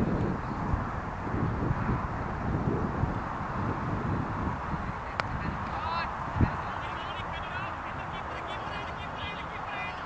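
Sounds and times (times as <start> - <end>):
distant shouted calls: 5.7 - 10.0.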